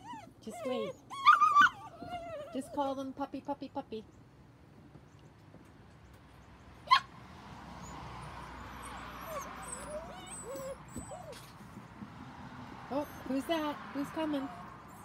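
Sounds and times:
puppies whimpering and whining: 0.0 - 3.0, 7.8 - 11.9, 12.9 - 15.0.

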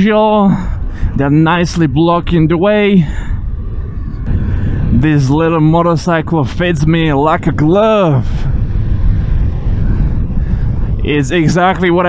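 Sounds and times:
motorcycle engine rumble: 0.0 - 12.0
wind noise on microphone: 0.0 - 12.0.

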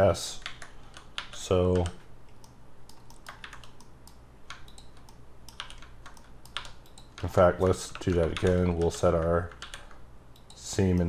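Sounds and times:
computer keyboard clicks: 0.4 - 11.0.

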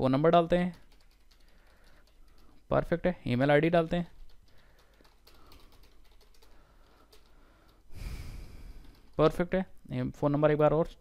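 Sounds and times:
computer keyboard typing: 0.4 - 3.0, 3.8 - 7.9, 8.7 - 9.6.

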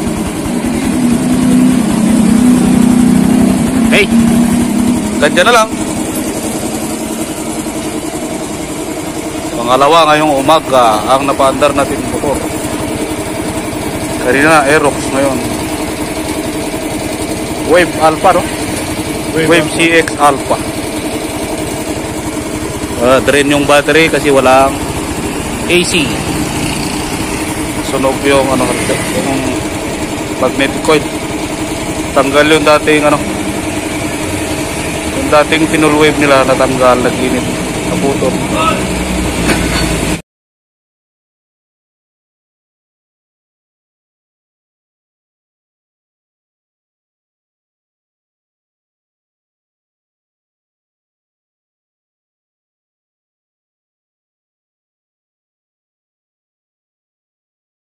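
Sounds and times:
motorcycle engine idling: 0.0 - 40.2.

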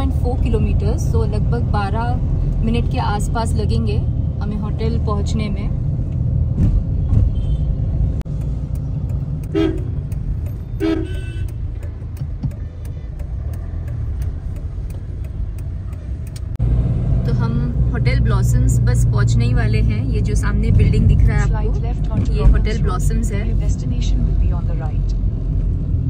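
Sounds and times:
car cabin road rumble: 0.0 - 26.0
vehicle horn toots: 7.2 - 7.8, 9.4 - 10.0, 10.7 - 11.6.

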